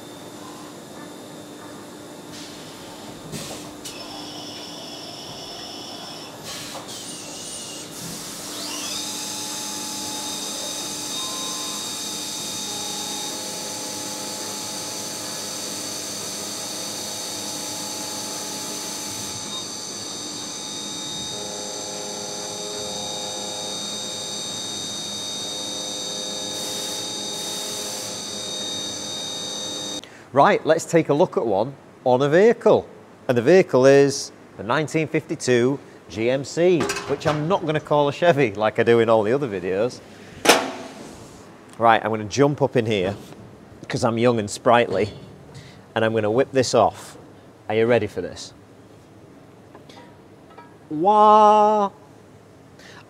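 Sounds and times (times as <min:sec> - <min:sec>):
milling machine spindle whine: 0:00.0 - 0:30.0
end mill cutting metal: 0:03.8 - 0:30.0.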